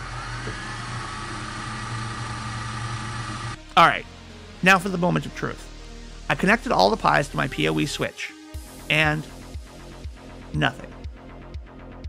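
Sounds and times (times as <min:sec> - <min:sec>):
motor-like whirring whine: 0:00.0 - 0:03.6.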